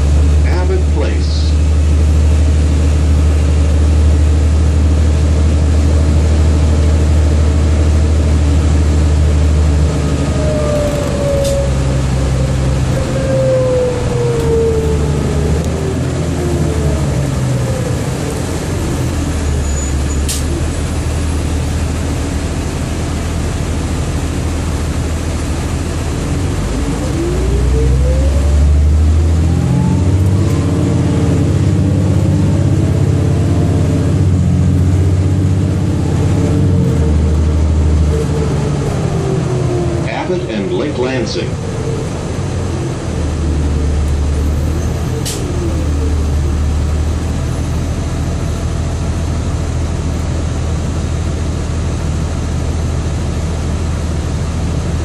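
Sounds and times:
bus drivetrain whine: 0:00.0 - 0:55.0
bus engine rumble: 0:00.0 - 0:55.0.

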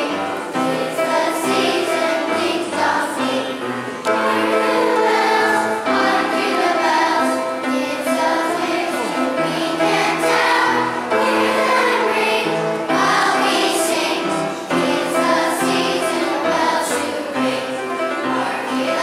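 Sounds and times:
children's choir singing: 0:00.0 - 0:19.0.

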